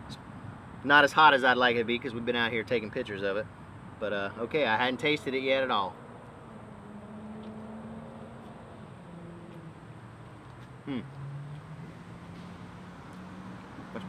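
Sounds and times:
man humming while chewing: 0:10.8 - 0:11.2.

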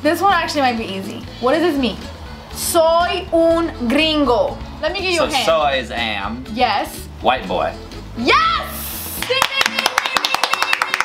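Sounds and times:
people clapping hands quickly: 0:09.0 - 0:11.0.

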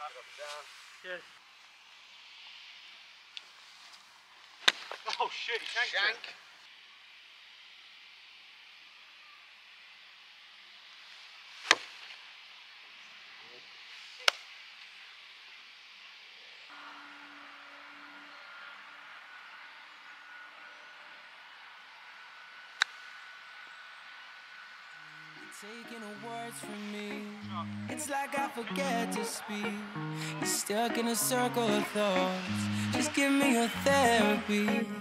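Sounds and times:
faint outdoor hush: 0:16.2 - 0:35.0.

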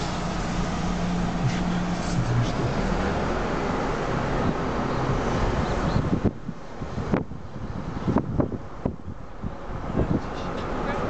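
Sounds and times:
wind buffeting microphone: 0:04.3 - 0:10.8.

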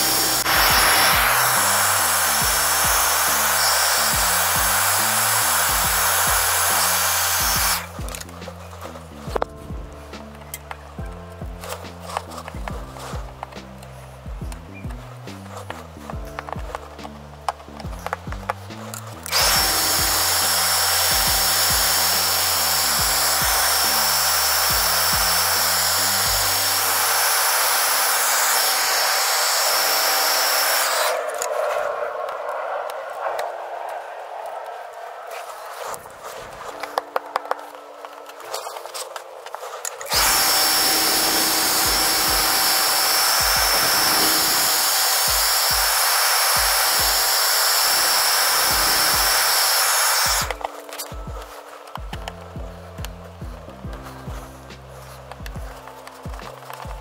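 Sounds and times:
hair dryer blowing: 0:00.0 - 0:08.2, 0:19.2 - 0:31.5, 0:40.0 - 0:52.2.

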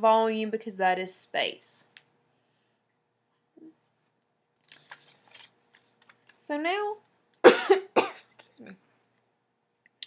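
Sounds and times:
paper rustling: 0:04.7 - 0:06.4.

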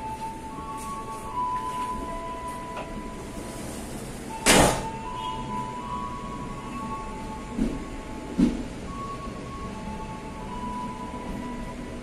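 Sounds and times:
train running noise: 0:00.0 - 0:12.0
train wheels thumping over track: 0:04.4 - 0:05.0, 0:07.6 - 0:08.7.

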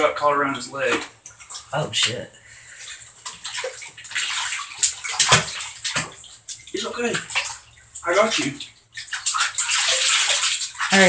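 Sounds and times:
bathtub water splashing: 0:00.0 - 0:11.0.

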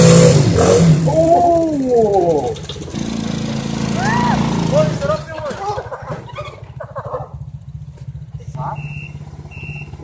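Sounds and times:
quad bike engine idling: 0:00.0 - 0:10.0
voices: 0:01.1 - 0:02.7, 0:04.0 - 0:07.5, 0:08.3 - 0:10.0.

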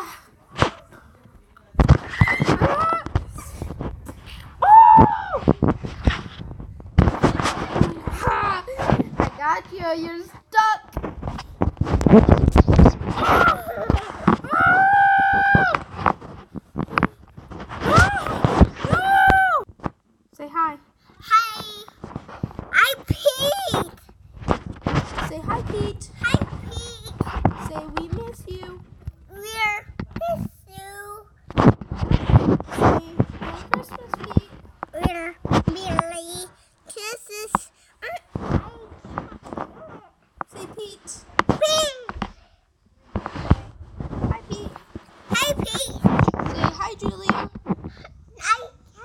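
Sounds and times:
child trilling voice: 0:12.7 - 0:15.8, 0:17.8 - 0:19.6, 0:22.7 - 0:24.0
child squealing: 0:13.2 - 0:15.8, 0:17.8 - 0:19.6.

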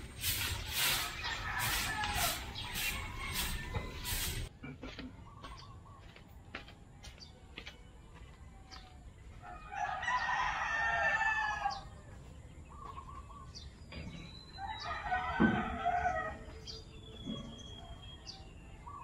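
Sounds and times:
rooster crowing: 0:01.0 - 0:04.4, 0:09.4 - 0:11.9, 0:14.6 - 0:16.6.

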